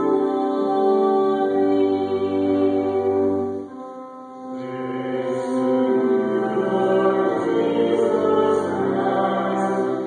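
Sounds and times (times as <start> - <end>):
slow chant-like church singing: 0.0 - 10.0.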